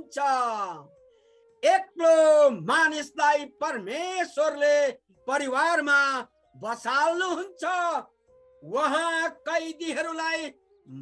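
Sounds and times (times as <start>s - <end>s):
man reading aloud: 0.0s - 0.9s, 1.6s - 8.0s, 8.7s - 11.0s
faint flute music: 0.0s - 11.0s.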